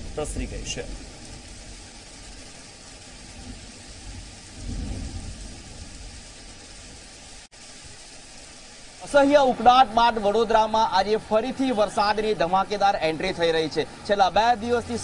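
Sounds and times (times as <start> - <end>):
rain hissing on a street: 0.0 - 15.0.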